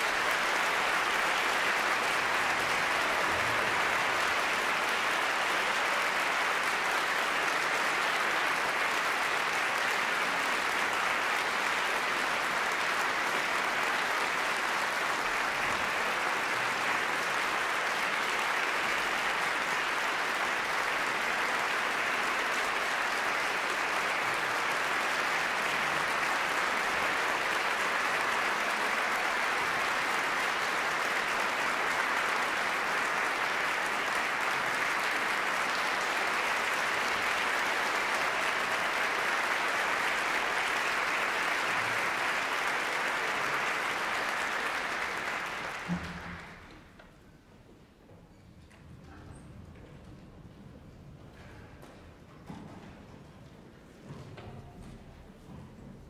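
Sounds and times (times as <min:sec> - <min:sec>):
audience applauding: 0:00.0 - 0:47.2.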